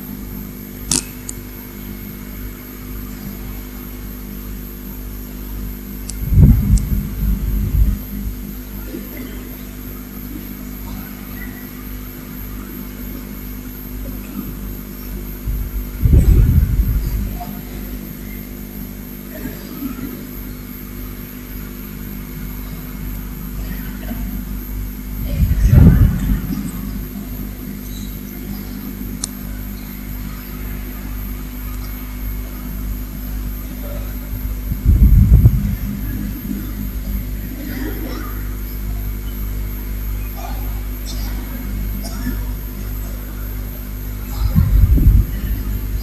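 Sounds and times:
low hum with hiss: 0:00.0 - 0:46.0
short low-pitched thumps: 0:34.7 - 0:36.2.

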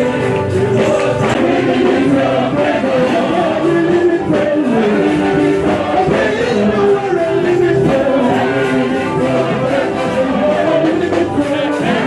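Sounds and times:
choir singing gospel song: 0:00.0 - 0:12.0
instrumental backing: 0:00.0 - 0:12.0.

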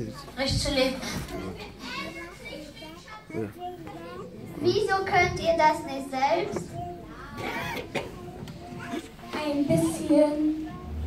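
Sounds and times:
children talking indistinctly: 0:00.0 - 0:11.0.

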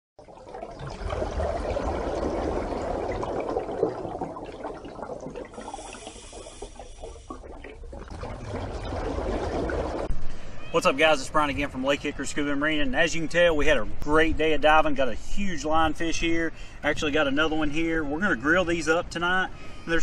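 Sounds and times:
rushing bubbling water: 0:00.2 - 0:10.1.

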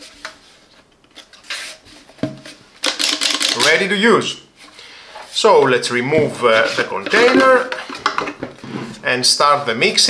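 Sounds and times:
plastic parts rubbing and scraping: 0:04.6 - 0:09.8.

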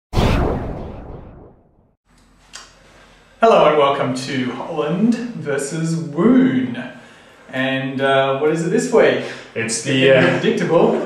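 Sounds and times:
whoosh-like hit: 0:00.1 - 0:01.9.

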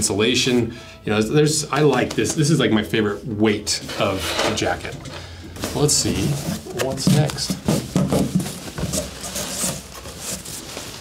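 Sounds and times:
cardboard box crinkling: 0:05.6 - 0:11.0
puffer pants rustling: 0:05.6 - 0:11.0.

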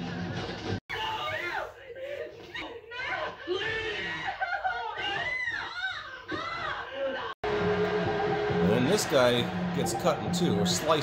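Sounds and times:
men screaming and yelling: 0:00.9 - 0:07.4.

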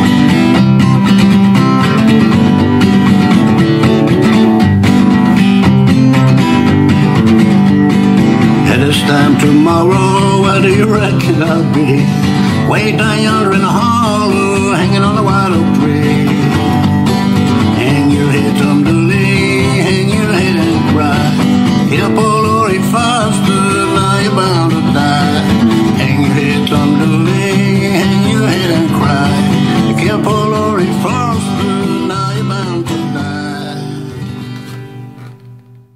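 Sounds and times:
acoustic guitar folk music: 0:00.0 - 0:35.9.

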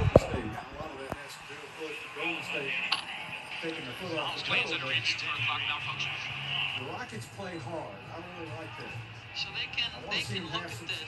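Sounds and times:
sports commentary: 0:00.0 - 0:11.0.

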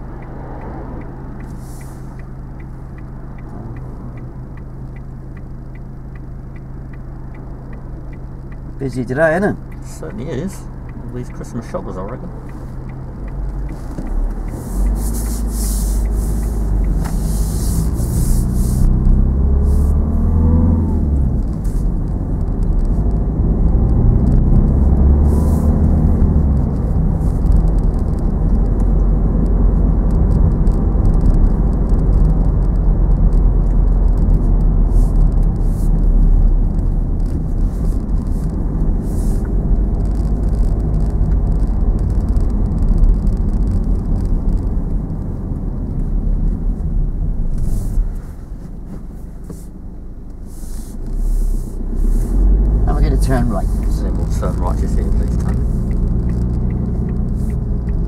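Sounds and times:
engine and tyre rumble: 0:00.0 - 0:58.0.

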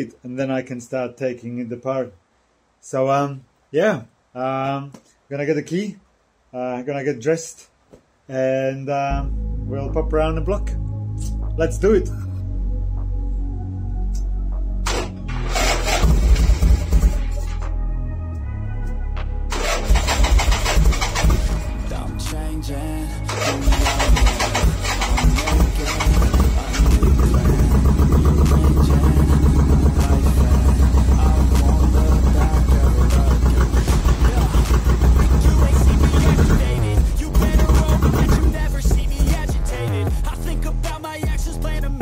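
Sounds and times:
background music: 0:09.0 - 0:42.0
motorcycle engine starting and idling: 0:14.8 - 0:17.7, 0:19.5 - 0:22.1, 0:23.3 - 0:38.7.

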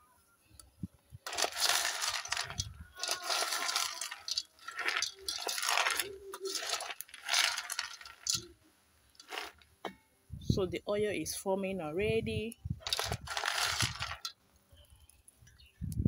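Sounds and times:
kernels rattling in metal pot: 0:01.2 - 0:08.5, 0:09.2 - 0:09.6, 0:12.8 - 0:14.3.

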